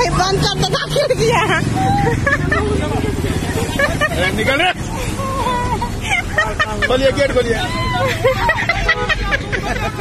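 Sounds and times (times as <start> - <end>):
women laughing and chattering: 0.0 - 10.0.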